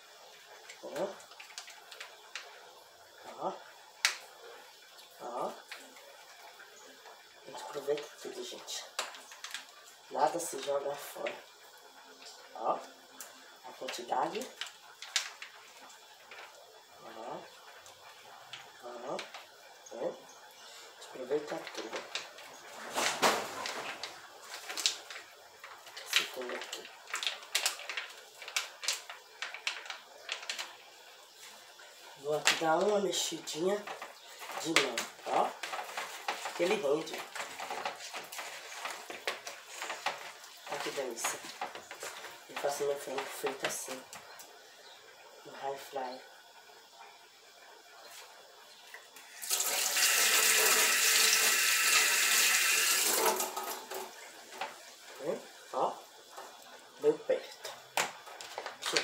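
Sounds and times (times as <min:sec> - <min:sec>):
plastic sachet crinkling: 0:08.9 - 0:10.0, 0:21.1 - 0:44.2, 0:57.6 - 0:59.0.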